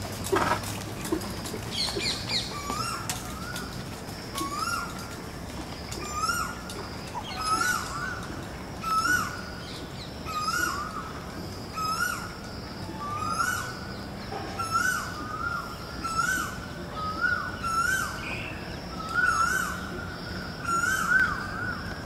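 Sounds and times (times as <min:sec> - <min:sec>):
birds chirping: 0:00.0 - 0:22.0.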